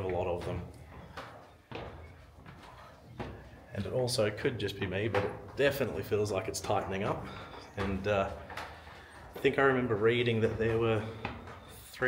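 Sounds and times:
footsteps on wooden stairs: 0.0s - 12.0s.

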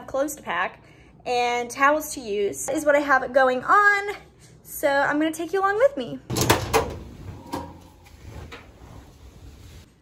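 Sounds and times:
fabric rustling: 7.8s - 10.0s.

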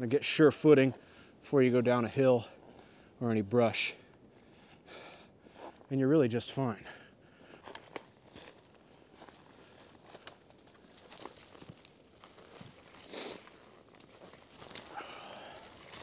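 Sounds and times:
twigs snapping underfoot: 7.6s - 16.0s
footsteps in snow: 7.7s - 16.0s.

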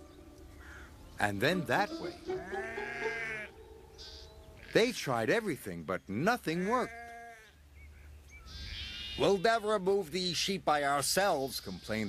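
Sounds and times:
faint low hum: 0.0s - 7.2s
sheep bleating: 1.5s - 4.9s, 6.5s - 7.6s.

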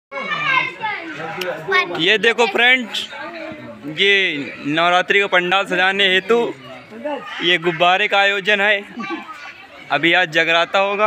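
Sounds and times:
children's voices: 0.1s - 11.0s
voices talking and calling: 0.1s - 11.0s.

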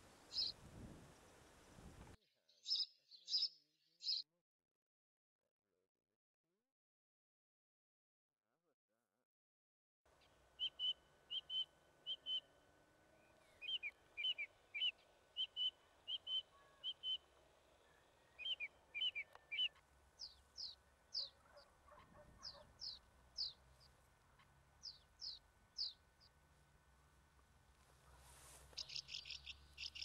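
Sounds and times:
small birds chirping: 0.0s - 1.9s, 2.5s - 4.2s, 10.2s - 30.0s.

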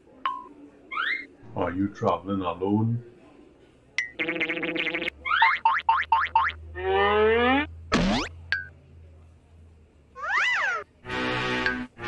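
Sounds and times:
cartoon rising squeaks: 0.9s - 1.3s, 10.2s - 10.9s
tone bending up and down: 4.2s - 8.7s.

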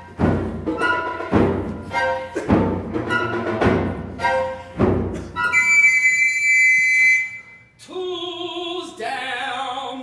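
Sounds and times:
high-pitched whistle blast: 5.4s - 7.7s.

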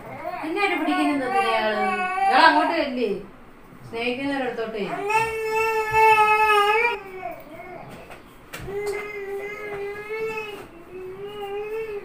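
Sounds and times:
infant crying: 0.1s - 2.8s, 4.9s - 7.9s.

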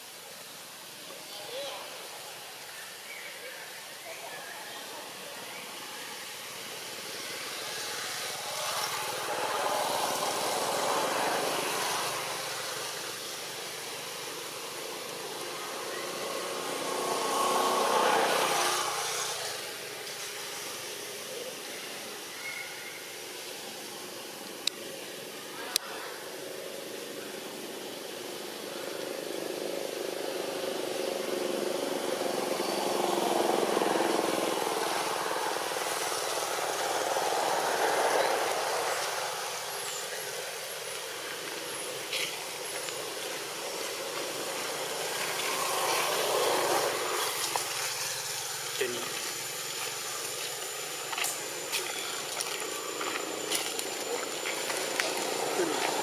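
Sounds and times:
motor traffic going by: 6.4s - 22.2s, 27.4s - 56.0s.

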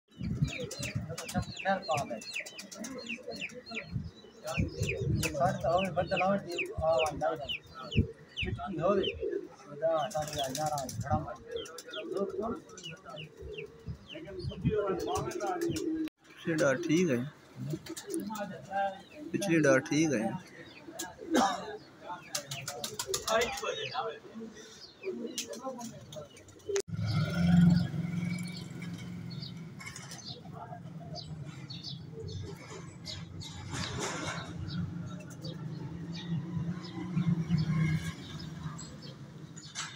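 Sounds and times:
small birds chirping: 0.1s - 39.9s
pigeons cooing: 0.2s - 39.1s.

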